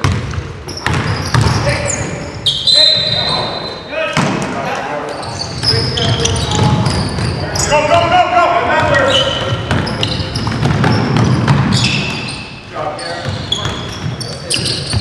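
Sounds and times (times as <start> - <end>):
basketball bouncing on hardwood: 0.0 - 1.6, 8.8 - 12.2
sneaker squeak: 0.0 - 4.0, 5.0 - 8.1, 8.8 - 15.0
players calling out: 0.7 - 15.0.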